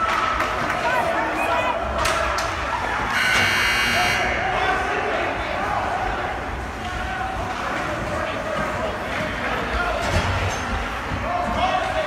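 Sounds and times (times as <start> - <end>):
ice rink buzzer: 3.1 - 4.4.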